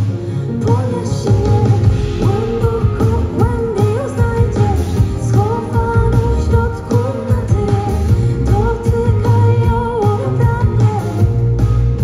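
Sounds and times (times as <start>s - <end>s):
live pop song: 0.0s - 12.0s
woman singing: 0.0s - 12.0s.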